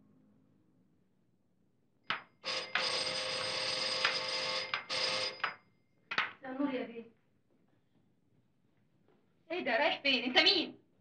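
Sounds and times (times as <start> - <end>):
electric doorbell ringing: 2.4 - 5.6.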